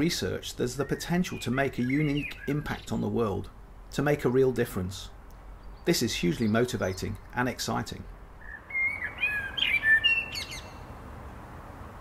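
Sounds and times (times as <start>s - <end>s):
faint outdoor hiss: 0.0s - 12.0s
songbird whistling: 0.8s - 3.0s, 8.4s - 10.8s.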